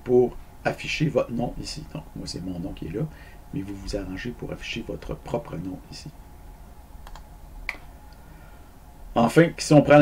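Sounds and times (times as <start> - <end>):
computer key clicks: 7.0 - 7.8.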